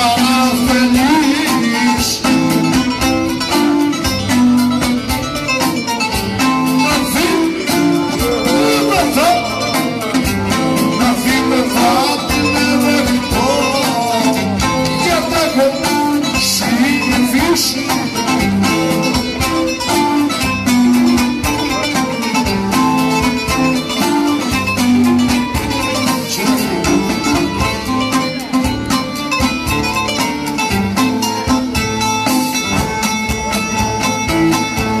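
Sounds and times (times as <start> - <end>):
strummed lutes: 0.0 - 35.0
bowed string melody: 2.2 - 35.0.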